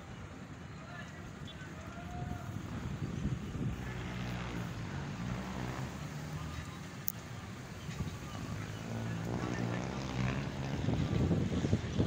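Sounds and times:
vehicle engine hum: 0.0s - 12.0s
wind buffeting microphone: 1.8s - 6.0s, 7.7s - 12.0s.

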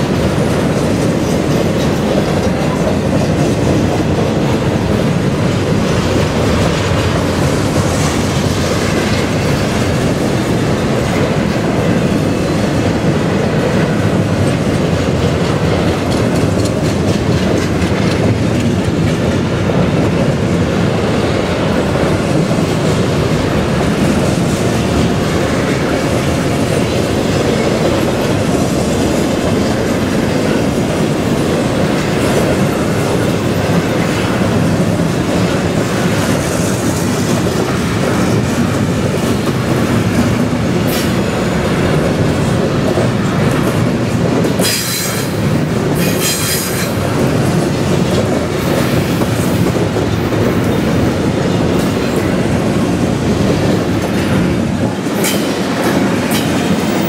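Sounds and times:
freight train wheels on rails: 0.0s - 57.0s.

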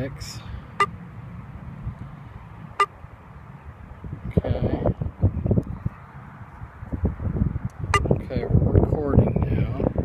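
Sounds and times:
wind rumbling on microphone: 1.2s - 10.0s.

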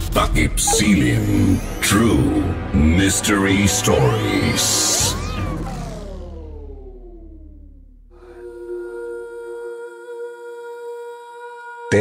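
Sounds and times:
tones sliding down in pitch: 0.7s - 1.8s, 4.2s - 8.2s
low rumble: 0.8s - 8.4s.

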